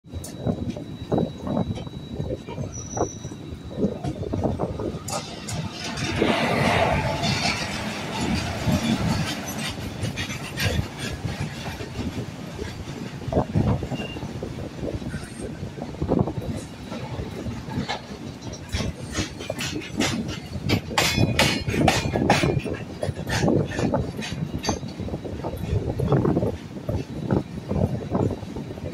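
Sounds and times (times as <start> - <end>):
train wheels rumbling on rails: 0.0 - 28.9
wheels clattering over rail joints: 0.3 - 14.3, 15.0 - 28.9.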